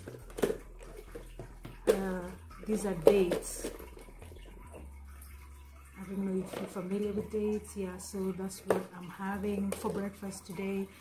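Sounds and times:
woman speaking: 1.9s - 3.8s, 6.0s - 11.0s.

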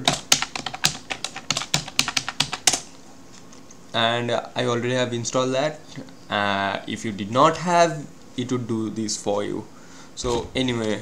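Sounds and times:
computer keyboard typing: 0.0s - 2.9s.

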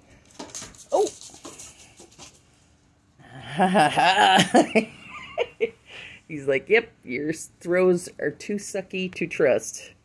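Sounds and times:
dog whining: 0.9s - 1.2s.

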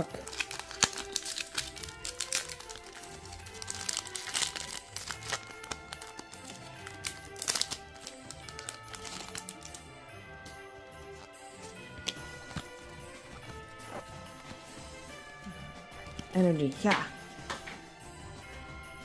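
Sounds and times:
foil wrapper crinkling: 0.0s - 9.8s, 11.1s - 15.1s
background music: 0.0s - 19.0s.

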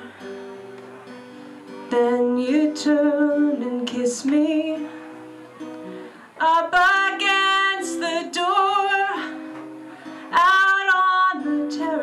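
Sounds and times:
acoustic guitar: 0.0s - 12.0s
woman singing: 1.9s - 5.0s, 6.4s - 9.6s, 10.2s - 12.0s.

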